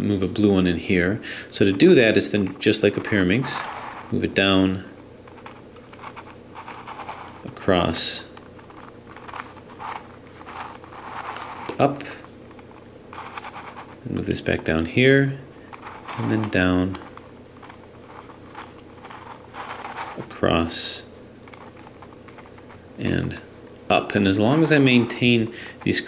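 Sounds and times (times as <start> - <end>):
plastic puzzle clicking and scraping: 3.4 - 4.2, 5.3 - 7.5, 8.4 - 14.0, 15.7 - 20.3, 21.5 - 22.8, 24.4 - 26.0.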